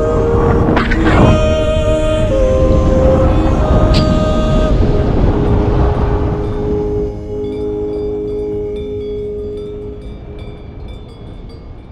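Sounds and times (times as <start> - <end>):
music with held note: 0.0 - 11.2
wind on microphone: 0.0 - 11.9
chime-like tinkling tones: 6.4 - 11.9.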